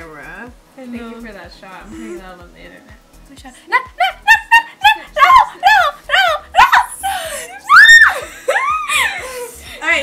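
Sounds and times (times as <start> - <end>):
young women laughing: 3.7 - 9.6.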